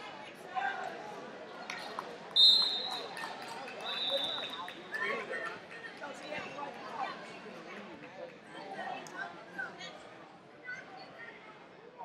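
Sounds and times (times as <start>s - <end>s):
background shouting and voices: 0.0s - 12.0s
referee whistle blasts: 2.4s - 3.1s, 3.8s - 4.7s.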